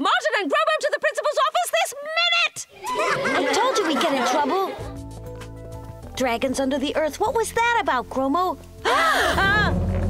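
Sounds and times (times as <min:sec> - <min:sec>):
high whinnying laugh: 0:02.8 - 0:04.8, 0:08.8 - 0:09.8
children laughing together: 0:02.8 - 0:04.9, 0:08.8 - 0:09.8.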